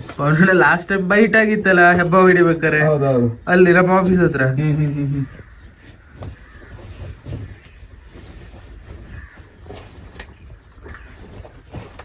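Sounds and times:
crow cawing: 4.3 - 11.9.

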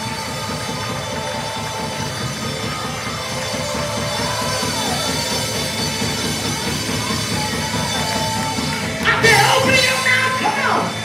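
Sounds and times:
drum kit fast beat: 0.0 - 11.0.

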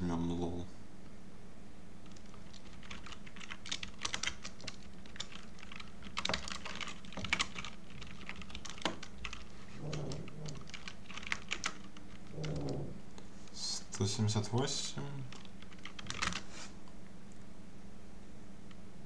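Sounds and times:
typing on computer keyboard: 2.0 - 12.8, 15.3 - 16.5.

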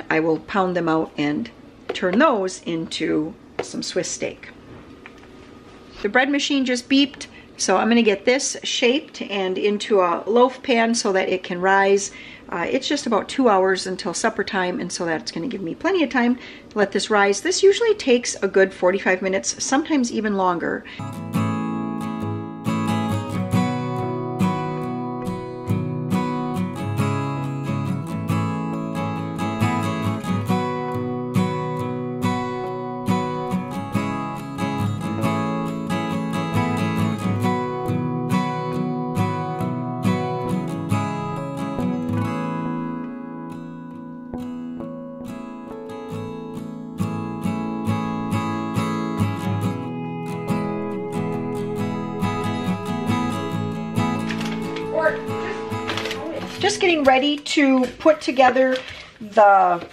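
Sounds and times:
strummed acoustic guitar music: 20.9 - 58.6.

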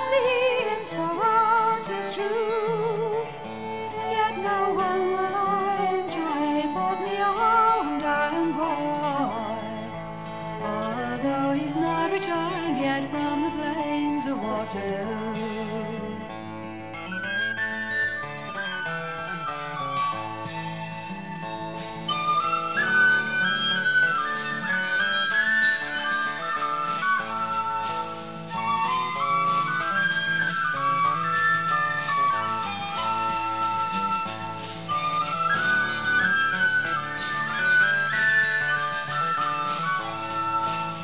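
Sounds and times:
high woodwind melody: 17.0 - 41.0.

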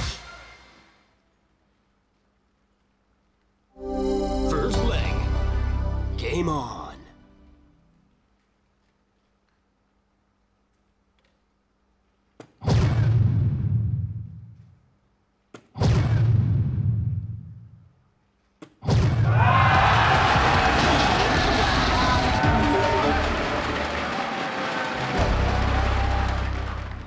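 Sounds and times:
electronic award music: 3.8 - 7.7, 21.2 - 27.0.

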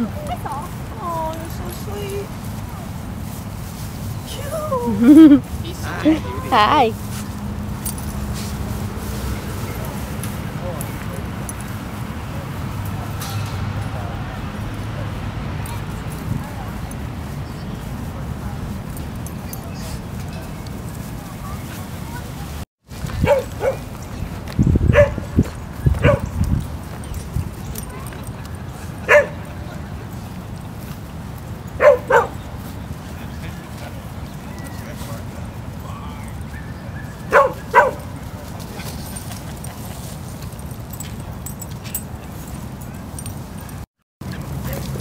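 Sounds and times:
dogs barking in play: 23.1 - 24.0, 24.8 - 25.3, 25.9 - 26.4, 28.7 - 29.6, 31.6 - 32.7, 36.3 - 39.8.

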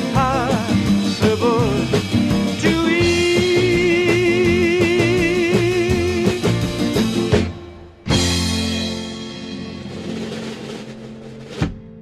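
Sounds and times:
man singing with vibrato: 0.0 - 6.6
guitar: 0.0 - 12.0
steady drum beat: 0.0 - 12.0.

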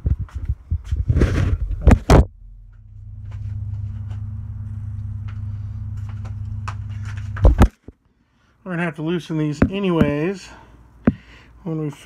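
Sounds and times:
steady low hum: 0.0 - 11.7
rustling: 0.3 - 7.6.

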